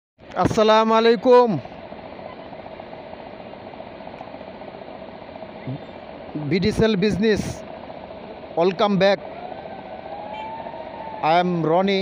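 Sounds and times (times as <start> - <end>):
thin constant whine: 0.2 - 12.0
background hum: 0.3 - 12.0.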